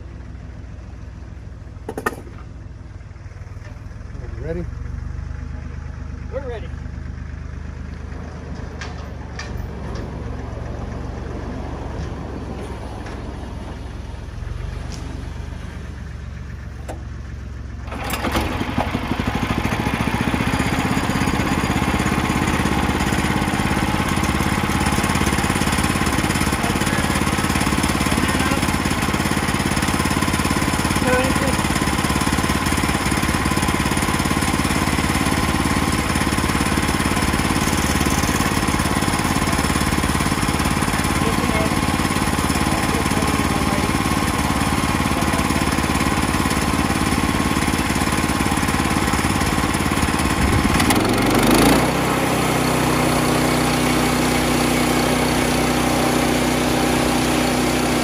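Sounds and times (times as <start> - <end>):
sawmill engine running: 0.0 - 58.0.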